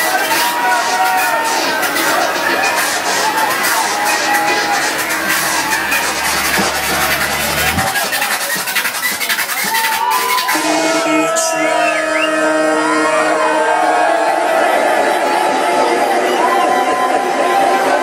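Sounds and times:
electronic club music: 0:00.0 - 0:15.2
crowd voices and cheers: 0:00.0 - 0:18.0.

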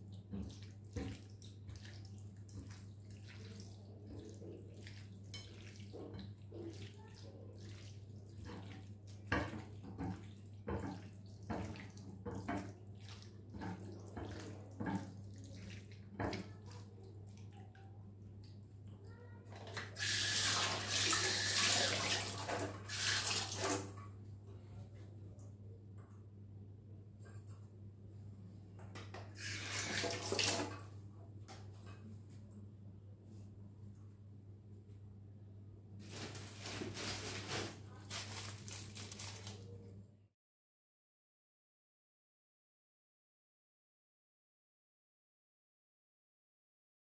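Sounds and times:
hand squishing chicken in marinade: 0:00.0 - 0:16.2
tap water splashing into sink: 0:00.2 - 0:07.0, 0:07.6 - 0:16.5, 0:19.5 - 0:24.0, 0:28.8 - 0:31.7.

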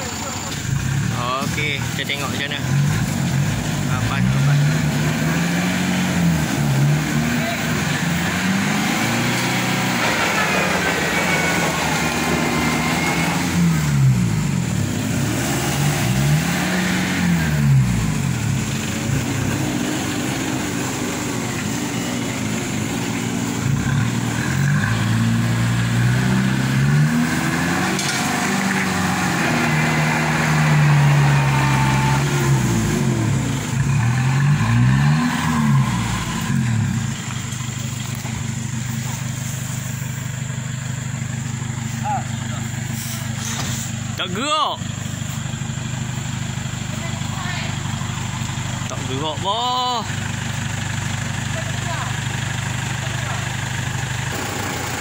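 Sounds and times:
vehicle engines revving hard: 0:00.0 - 0:55.0.

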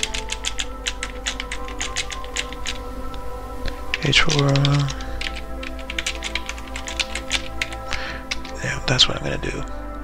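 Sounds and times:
fast typing on keyboard: 0:00.0 - 0:02.8, 0:03.9 - 0:08.6.

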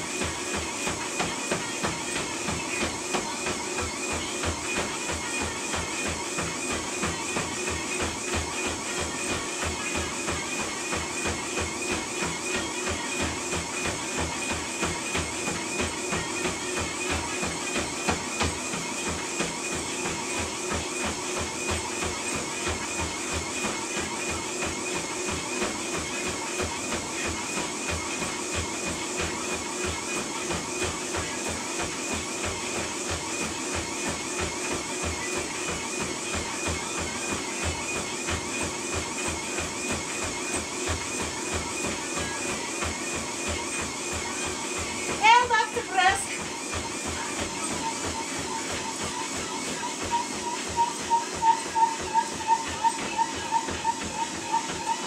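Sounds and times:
footfalls on treadmill belt: 0:00.0 - 0:55.0
treadmill motor whine: 0:00.0 - 0:55.0.

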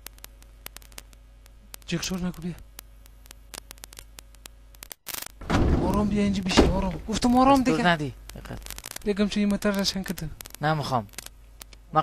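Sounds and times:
clicks and crackle: 0:00.0 - 0:12.0
faint low hum: 0:00.0 - 0:12.0.

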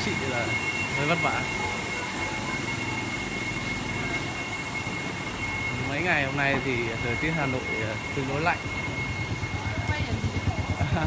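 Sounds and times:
faint high whine: 0:00.0 - 0:11.0
rumbling mechanical noise: 0:00.0 - 0:11.0
water churning in tubs: 0:00.0 - 0:11.0.

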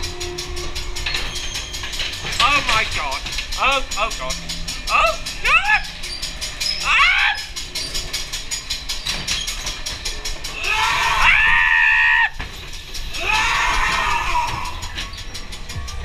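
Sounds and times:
fast even clicking: 0:00.2 - 0:11.6
people shrieking: 0:04.9 - 0:06.1, 0:06.8 - 0:07.6, 0:10.5 - 0:16.0
long high scream: 0:10.6 - 0:12.4, 0:13.1 - 0:14.8.

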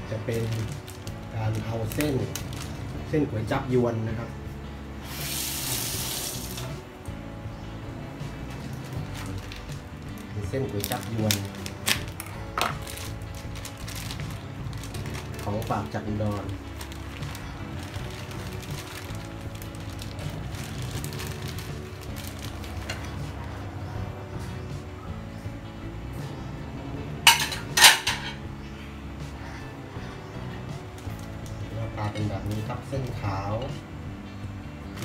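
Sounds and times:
background music: 0:00.0 - 0:35.0
plastic bag crinkling: 0:00.3 - 0:03.0, 0:08.6 - 0:23.4
water running from tap: 0:05.1 - 0:06.7.

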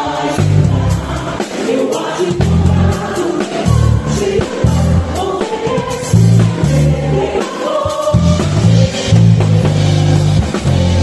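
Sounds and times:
drum kit: 0:00.0 - 0:11.0
voices singing: 0:00.0 - 0:11.0
electric bass guitar low notes: 0:00.4 - 0:01.1, 0:02.4 - 0:03.1, 0:06.1 - 0:07.3, 0:08.2 - 0:11.0.

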